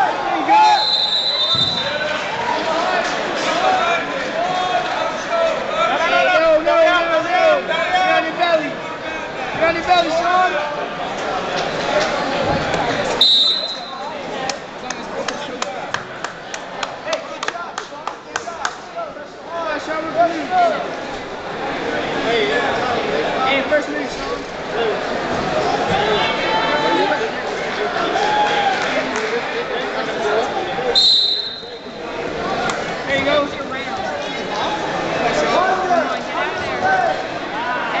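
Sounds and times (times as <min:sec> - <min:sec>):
referee's whistle blast: 0:00.6 - 0:02.0, 0:13.2 - 0:14.1, 0:31.0 - 0:31.8.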